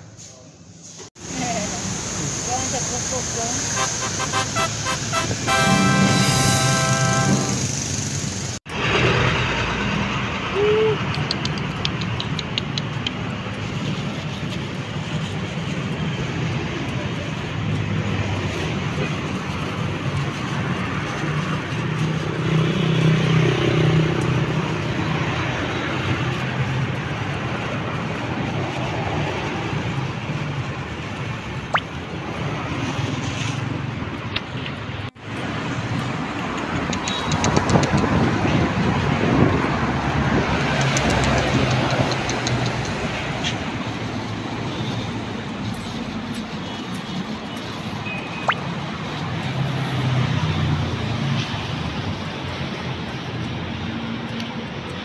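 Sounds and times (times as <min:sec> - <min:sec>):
road traffic rumble: 0:00.0 - 0:55.0.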